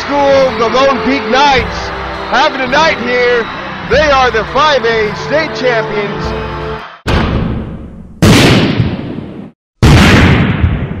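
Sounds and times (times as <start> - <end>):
impact sound effects: 6.8 - 11.0.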